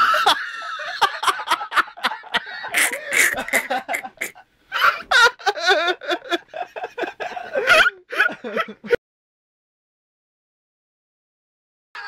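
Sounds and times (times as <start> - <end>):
group of people laughing: 0.0 - 9.0.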